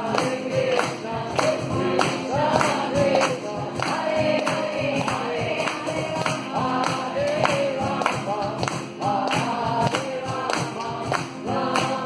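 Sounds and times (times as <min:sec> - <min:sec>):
several voices singing a chant: 0:00.0 - 0:12.0
strummed acoustic guitar: 0:00.0 - 0:12.0.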